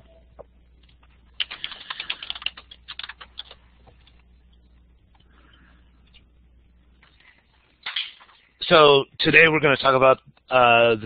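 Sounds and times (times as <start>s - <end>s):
computer keyboard typing: 1.4s - 4.2s.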